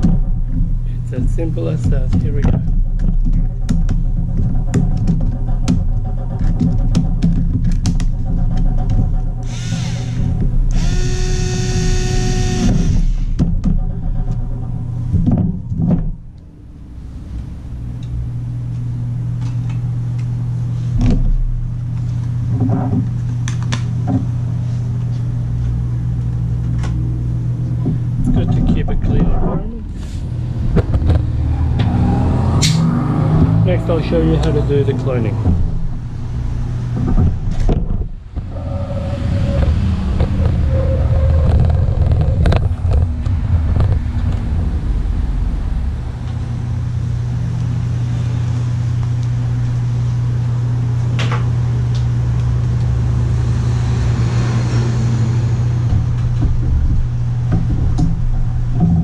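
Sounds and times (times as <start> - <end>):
handling clicks and knocks: 0.0 - 9.4
steady low drone: 0.0 - 59.0
electric screwdriver whirring: 9.5 - 13.2.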